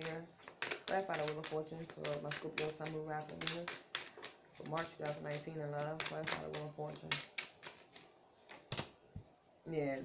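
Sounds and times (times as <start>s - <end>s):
cards being shuffled: 0.0s - 8.9s.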